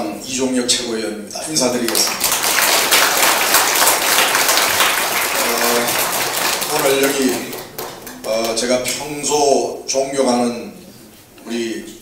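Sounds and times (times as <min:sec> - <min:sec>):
audience applauding: 0:01.8 - 0:09.0
man speaking: 0:05.3 - 0:06.0, 0:06.6 - 0:10.8.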